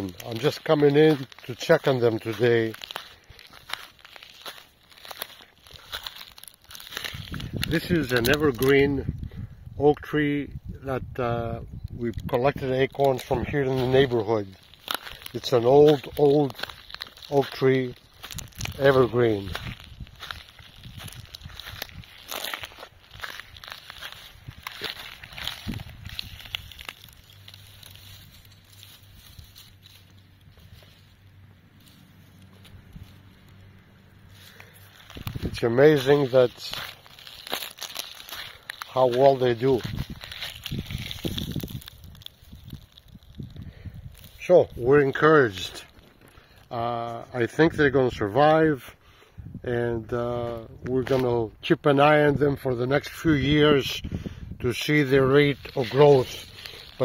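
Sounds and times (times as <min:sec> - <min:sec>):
footsteps on pine needles: 0:00.0 - 0:09.2, 0:11.9 - 0:48.8, 0:50.0 - 0:51.6, 0:54.7 - 0:57.0
twigs crackling and snapping: 0:00.0 - 0:10.0, 0:10.6 - 0:48.8, 0:50.2 - 0:53.8, 0:54.7 - 0:57.0.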